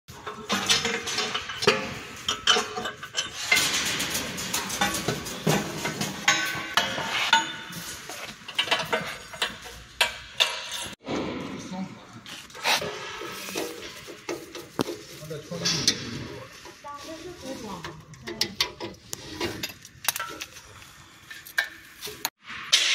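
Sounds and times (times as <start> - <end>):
metal parts clanking: 0.1 - 11.0, 17.8 - 22.3.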